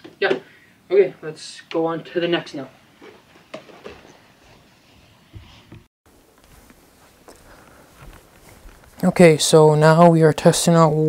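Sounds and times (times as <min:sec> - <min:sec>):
faint footsteps: 0:03.0 - 0:09.6.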